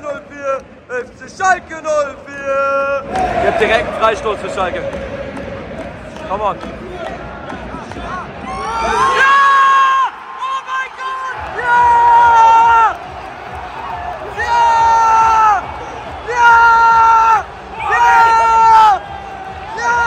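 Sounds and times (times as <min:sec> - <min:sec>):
stadium crowd cheering: 0:02.4 - 0:20.0
man yelling shouts of joy: 0:08.5 - 0:13.0.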